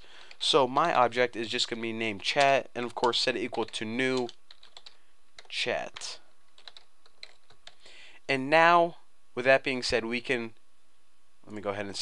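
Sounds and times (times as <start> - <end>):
computer keyboard typing: 2.4 - 7.9.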